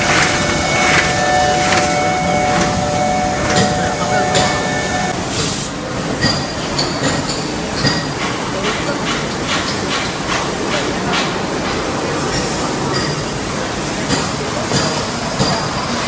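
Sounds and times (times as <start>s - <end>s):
die-cutting machine din: 0.0s - 5.1s
machine clacks: 0.0s - 5.2s, 6.2s - 13.4s.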